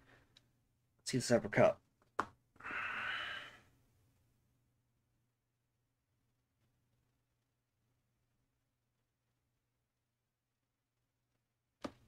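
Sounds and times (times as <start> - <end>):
person exhaling hard: 2.6 - 3.7.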